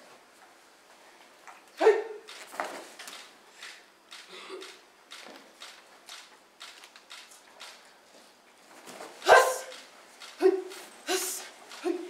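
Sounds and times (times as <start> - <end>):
karate kiai shout: 1.8 - 2.3, 9.2 - 9.8, 10.4 - 12.0.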